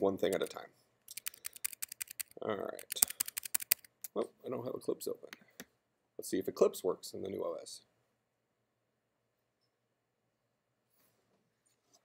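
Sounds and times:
computer keyboard keys clicking: 0:01.1 - 0:03.9.

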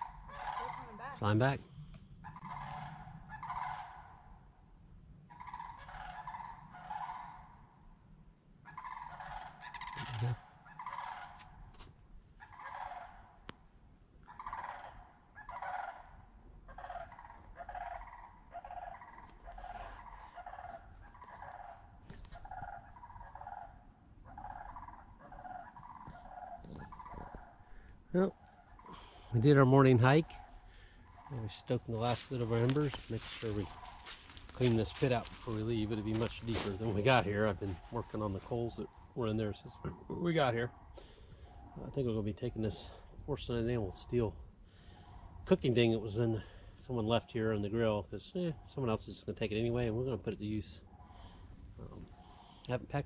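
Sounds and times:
birds calling: 0:00.0 - 0:04.5, 0:05.2 - 0:07.8, 0:08.6 - 0:13.6, 0:14.2 - 0:53.0.

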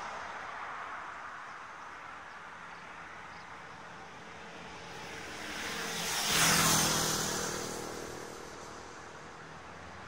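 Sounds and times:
vehicle passing by: 0:04.2 - 0:10.0.

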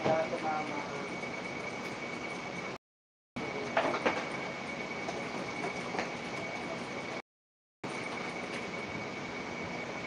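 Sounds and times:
thin high whine: 0:00.0 - 0:02.8, 0:03.4 - 0:07.2, 0:07.9 - 0:10.0.

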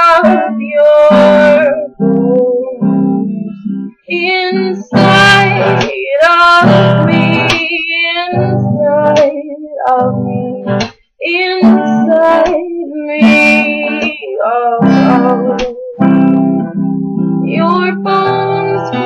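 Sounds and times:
woman singing softly: 0:00.0 - 0:03.3, 0:04.1 - 0:16.2, 0:17.4 - 0:19.0
plucked guitar chords: 0:00.0 - 0:19.0.

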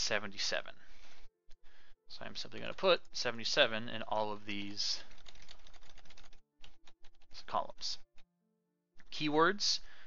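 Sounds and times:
computer keyboard keys clicking: 0:04.6 - 0:07.3.

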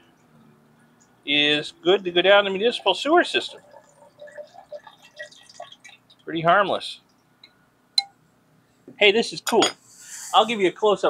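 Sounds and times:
liquid trickling into a beaker: 0:01.9 - 0:06.4.

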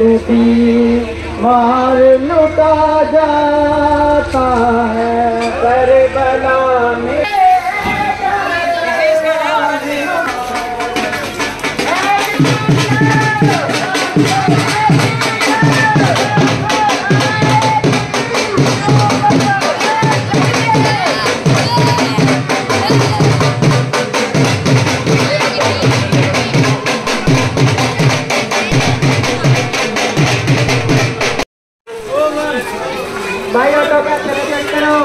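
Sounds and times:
voices chanting: 0:00.0 - 0:31.4
drums beating rapid rhythm: 0:07.2 - 0:31.4
deep drum pulsing: 0:10.6 - 0:31.4.

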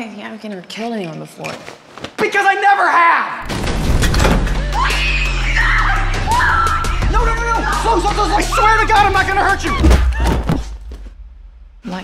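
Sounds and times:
trailer music with deep bass: 0:03.4 - 0:12.0.

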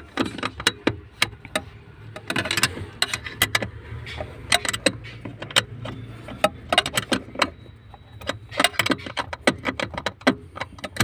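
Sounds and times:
metallic clicks and taps of tools: 0:00.0 - 0:11.0.

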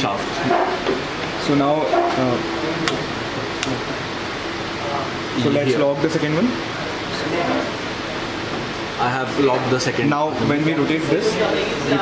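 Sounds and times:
fan running: 0:00.0 - 0:12.0.

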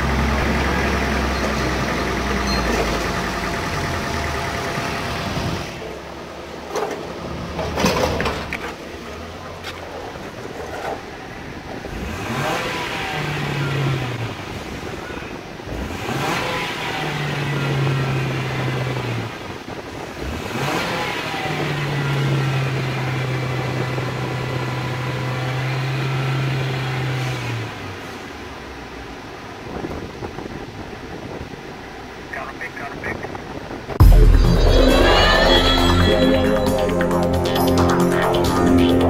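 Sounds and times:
car engine revving: 0:00.0 - 0:28.2.

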